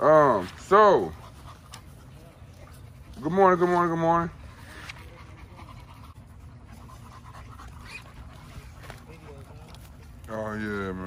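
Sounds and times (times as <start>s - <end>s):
dog panting quietly: 0.4s - 11.0s.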